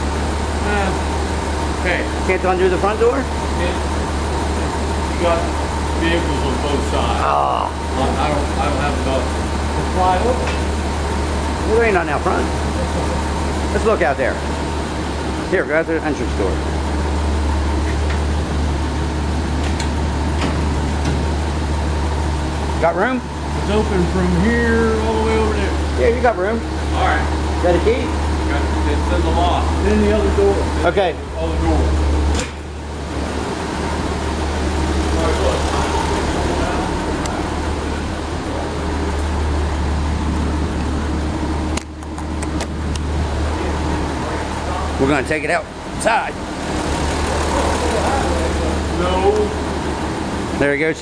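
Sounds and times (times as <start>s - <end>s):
engine idling: 0.0s - 51.0s.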